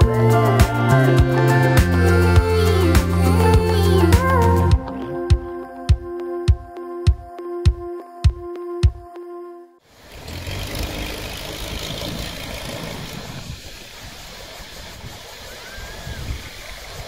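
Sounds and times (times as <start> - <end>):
background music: 0.0 - 9.8
wind: 9.8 - 17.0
small waves washing onto beach: 10.0 - 17.0.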